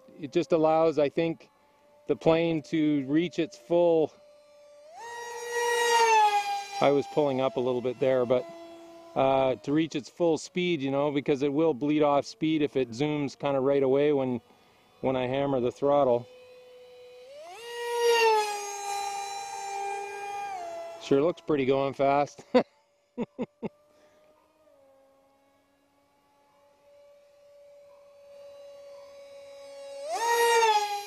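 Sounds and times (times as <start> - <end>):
electric motor and propeller whining: 0.0 - 31.0.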